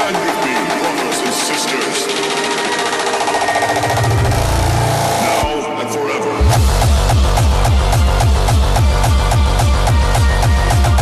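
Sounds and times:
rapid electronic dance beats: 0:00.0 - 0:11.0
deep bass swell: 0:03.9 - 0:05.6, 0:06.4 - 0:11.0.

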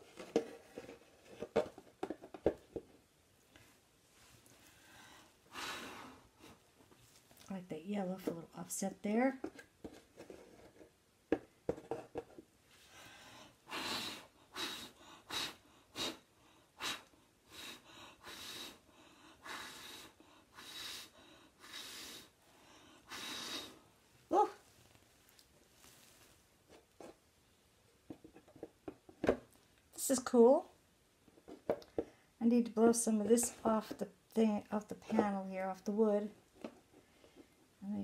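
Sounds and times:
person blowing puffs of breath: 0:04.8 - 0:06.6, 0:12.9 - 0:23.9.

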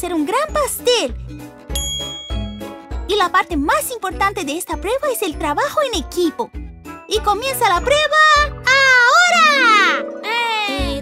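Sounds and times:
bell-like ding: 0:01.7 - 0:02.8.

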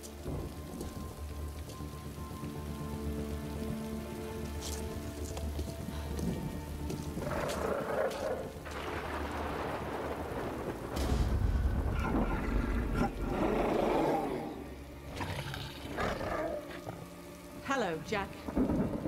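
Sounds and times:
steady rain: 0:00.0 - 0:19.0
tense film score: 0:00.0 - 0:19.0
thunder rumble: 0:05.9 - 0:15.0, 0:18.3 - 0:19.0.

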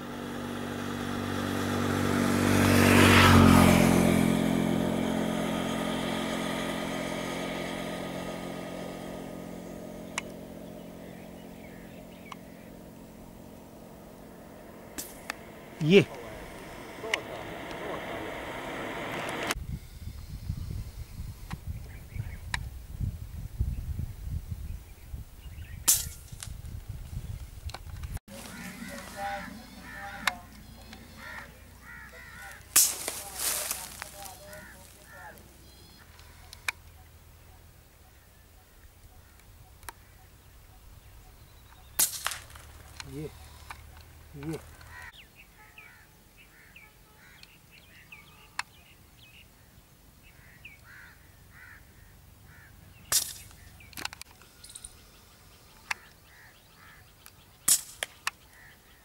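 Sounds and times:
wind rumble on microphone: 0:19.2 - 0:28.2
faint bird call: 0:28.3 - 0:42.0, 0:42.6 - 0:49.4.

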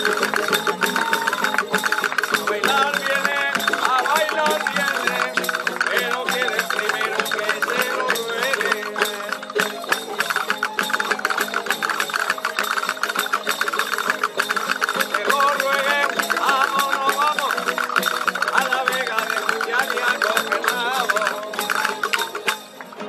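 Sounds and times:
plucked string melody: 0:00.0 - 0:23.0
strummed guitars: 0:00.0 - 0:23.0
tambourine jingles: 0:00.0 - 0:23.0.

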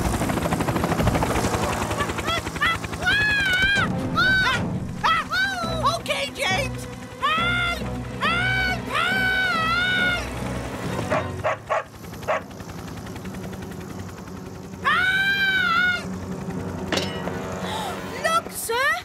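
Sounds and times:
background music: 0:00.0 - 0:19.0
cartoon helicopter rotor chopping: 0:00.0 - 0:19.0
high-pitched cries: 0:14.8 - 0:16.1.

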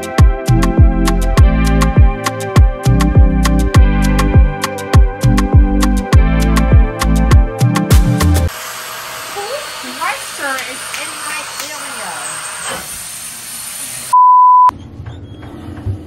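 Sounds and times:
censor bleep: 0:14.1 - 0:14.7.

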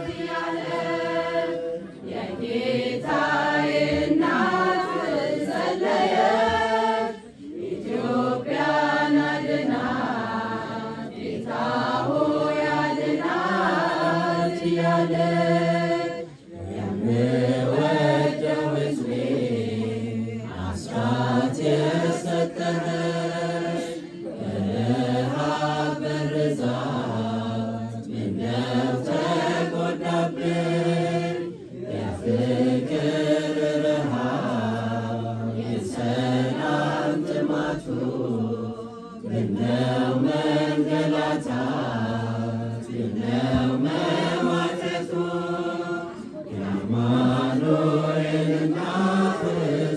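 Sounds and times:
choir singing a hymn: 0:00.0 - 0:49.9.

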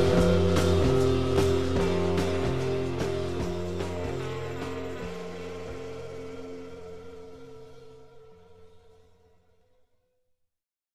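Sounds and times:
rock chords ringing: 0:00.0 - 0:08.2.

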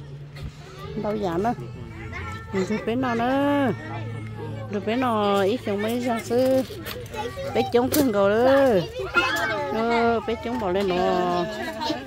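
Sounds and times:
children's voices: 0:00.0 - 0:12.0
people talking and calling out: 0:00.0 - 0:12.0.

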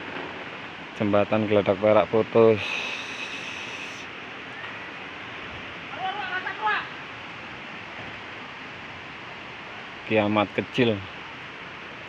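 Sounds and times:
river rushing: 0:00.0 - 0:12.0.

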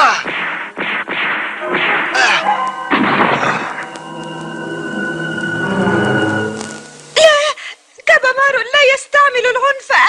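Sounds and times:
cartoon whip-like swishes: 0:00.0 - 0:03.8.

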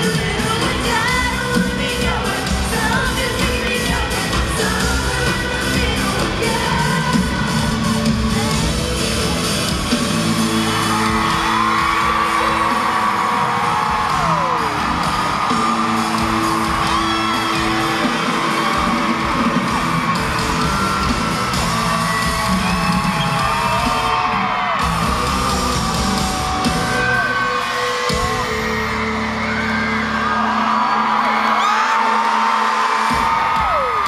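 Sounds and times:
crowd screaming and whooping: 0:00.0 - 0:34.0
live pop-rock band: 0:00.0 - 0:34.0.

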